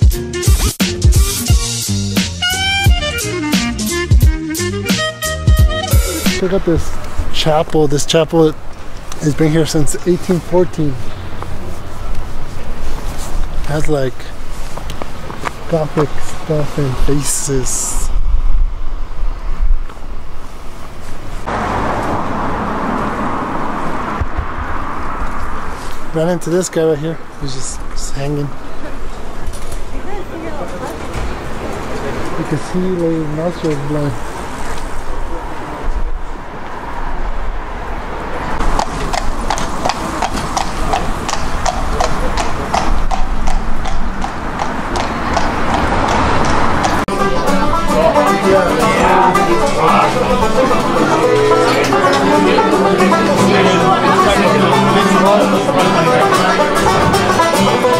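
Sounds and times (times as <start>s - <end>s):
city street traffic: 0.0s - 57.9s
horse hooves clip-clopping on asphalt: 11.2s - 16.4s, 38.6s - 47.1s
wind rumble on microphone: 17.9s - 26.1s.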